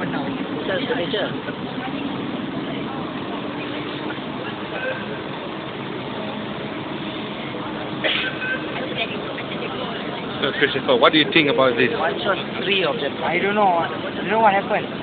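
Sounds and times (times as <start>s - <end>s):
fire engines idling: 0.0s - 15.0s
traffic noise: 0.0s - 15.0s.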